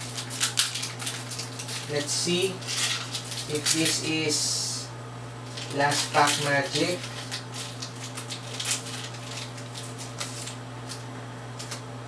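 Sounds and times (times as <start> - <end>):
scratchy rustles: 0.0 - 4.0
foil wrapper crinkling: 0.0 - 4.3, 5.4 - 11.8.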